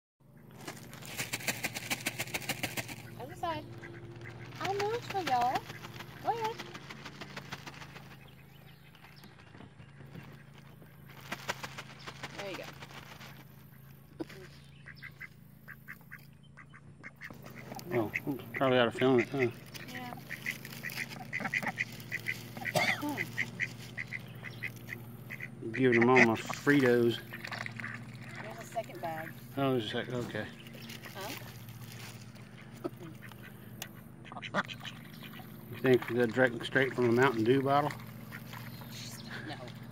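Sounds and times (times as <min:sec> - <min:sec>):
ducks quacking: 0:00.3 - 0:39.9
low hum: 0:00.3 - 0:39.9.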